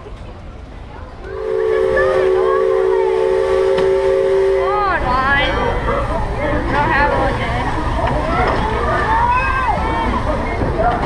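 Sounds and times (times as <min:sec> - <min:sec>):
voices: 0:00.0 - 0:11.0
steam whistle chord: 0:01.4 - 0:05.0.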